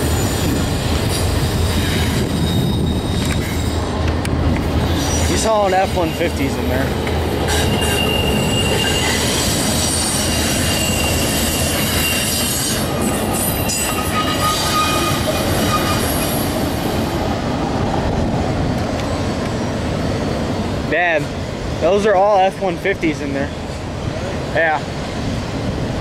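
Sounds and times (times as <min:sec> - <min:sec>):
freight train wheels on rails: 0:00.0 - 0:26.0
thin wheel squeals: 0:07.5 - 0:16.4.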